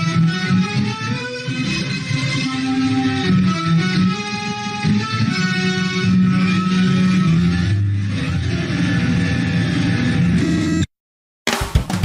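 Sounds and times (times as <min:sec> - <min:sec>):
instrumental guitar music: 0:00.0 - 0:10.4.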